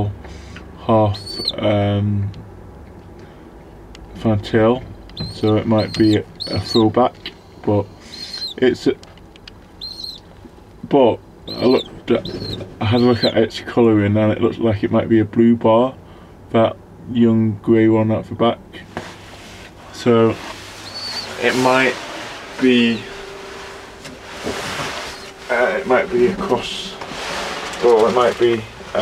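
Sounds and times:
faint steady hum: 0.0 - 29.0
high bird chirp: 1.2 - 1.6, 5.2 - 6.8, 8.0 - 8.6, 9.8 - 10.3, 11.4 - 13.4, 20.8 - 21.4.

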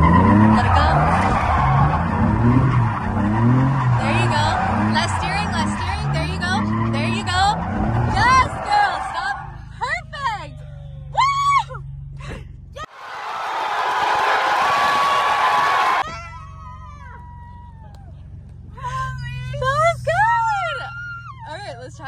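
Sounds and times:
car engine hum: 0.0 - 13.0, 14.0 - 22.0
people screaming and shouting: 12.8 - 18.2, 20.3 - 21.7
loud rush of noise: 12.9 - 16.0.

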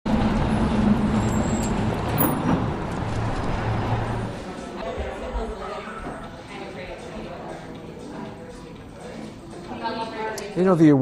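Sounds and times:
street traffic hum: 0.1 - 4.8.

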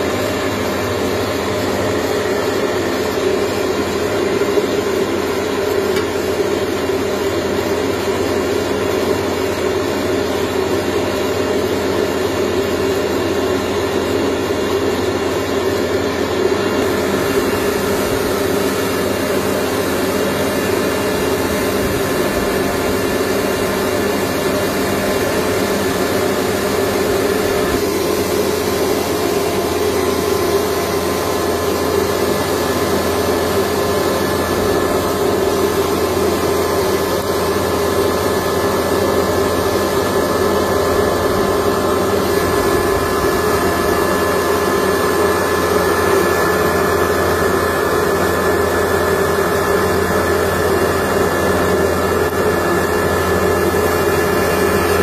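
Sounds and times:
rice mill running: 0.0 - 55.0
thin steady whine: 0.0 - 55.0
grain pouring: 15.0 - 55.0.

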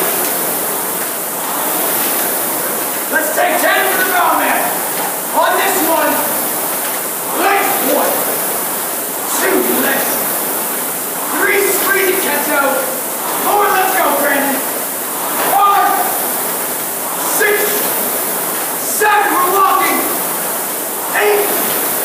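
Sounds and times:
rowing machine flywheel whoosh: 0.0 - 22.0
man calling out encouragement: 3.1 - 6.4, 7.3 - 8.3, 9.3 - 10.2, 11.3 - 14.8, 15.4 - 16.2, 17.3 - 17.9, 18.8 - 20.2, 21.0 - 21.7.

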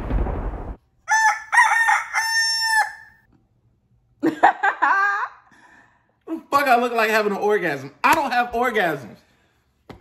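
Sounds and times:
rooster crowing: 1.0 - 3.3.

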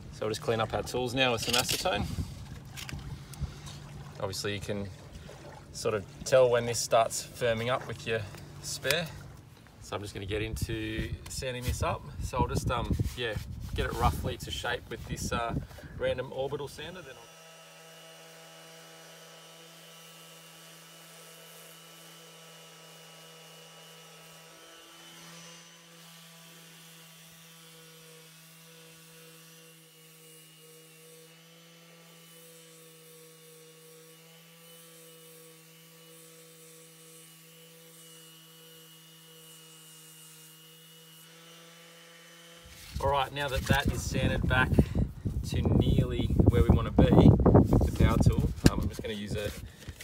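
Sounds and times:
orbital sander motor hum: 2.0 - 50.0.

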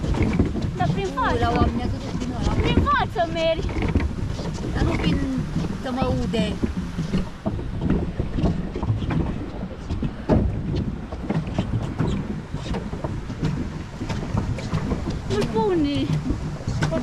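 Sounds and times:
clicks and knocks of pedal boat: 0.0 - 17.0
paddle wheel churning water: 0.0 - 17.0
wind rumbling on microphone: 0.0 - 17.0.

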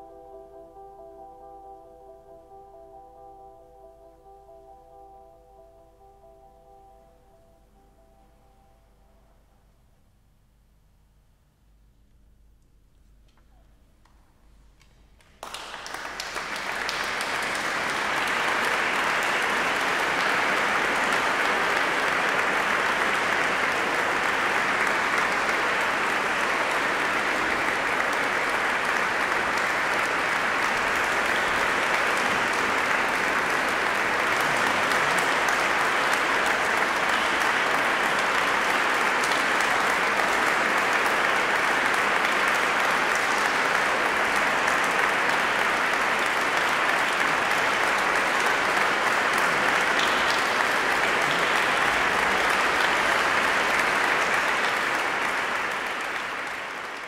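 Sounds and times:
audience applauding: 15.2 - 57.0.

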